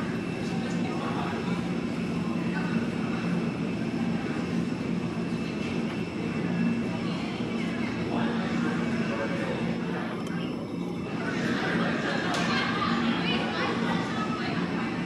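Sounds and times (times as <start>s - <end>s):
murmur of voices: 0.0s - 15.0s
steady low hum: 0.0s - 15.0s.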